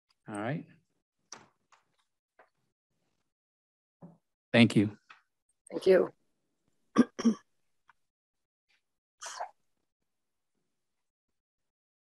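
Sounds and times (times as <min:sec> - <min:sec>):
person clearing throat: 0:07.0 - 0:07.5.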